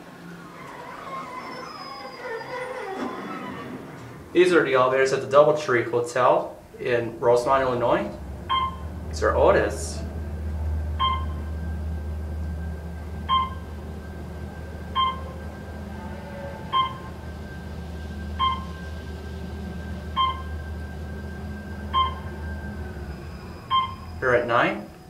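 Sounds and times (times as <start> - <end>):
elevator low hum: 0.0 - 25.0
faint steady whine: 0.0 - 25.0
short electronic beeps: 8.5 - 8.8, 11.0 - 11.4, 13.3 - 13.7, 15.0 - 15.4, 16.7 - 17.1, 18.4 - 18.9, 20.2 - 20.6, 21.9 - 22.3, 23.7 - 24.2.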